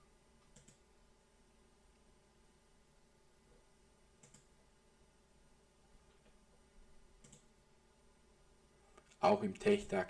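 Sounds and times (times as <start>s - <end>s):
faint computer mouse clicks: 0.4s - 0.8s, 4.2s - 4.5s, 7.2s - 7.5s.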